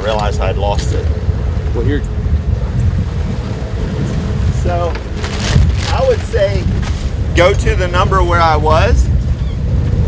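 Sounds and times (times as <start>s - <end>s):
water around boat hull: 0.0s - 10.0s
wind buffeting microphone: 0.0s - 10.0s.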